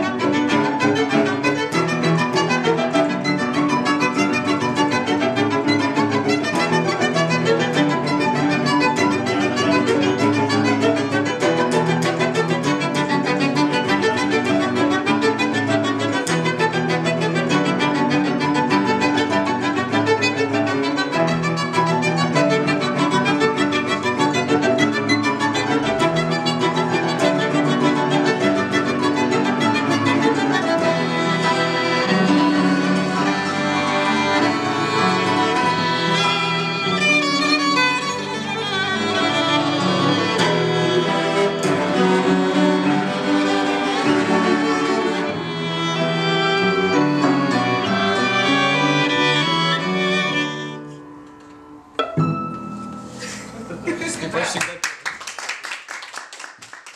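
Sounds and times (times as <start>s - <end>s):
violin cello and piano chamber music: 0.0s - 54.5s.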